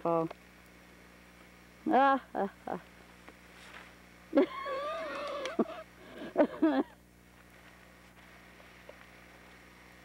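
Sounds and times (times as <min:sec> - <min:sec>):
person's high-pitched vocal whine: 0:04.4 - 0:06.4.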